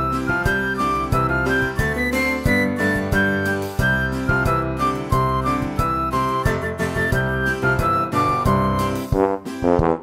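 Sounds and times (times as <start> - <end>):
flute-like melody: 0.0 - 9.7.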